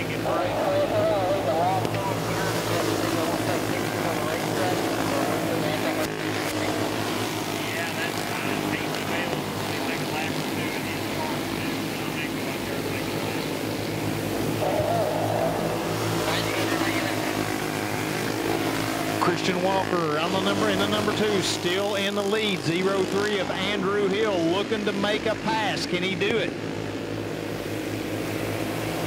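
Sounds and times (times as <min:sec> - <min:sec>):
go-kart engines racing: 0:00.0 - 0:29.0.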